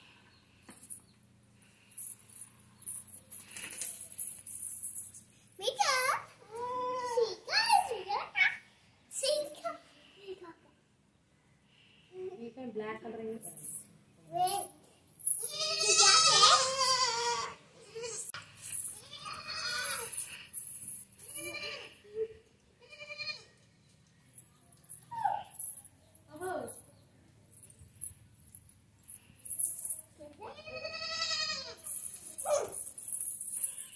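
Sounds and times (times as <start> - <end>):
baby goat bleating: 15.4 - 18.3, 19.0 - 20.1, 21.3 - 21.9, 22.8 - 23.5, 30.5 - 31.8.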